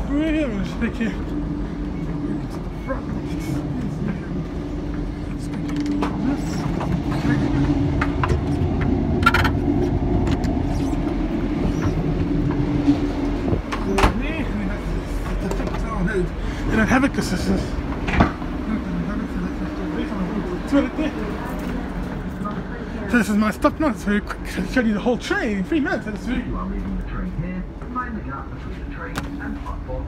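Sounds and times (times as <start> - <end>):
rumble of train wheels: 0.0 - 30.0
train engine drone: 0.0 - 30.0.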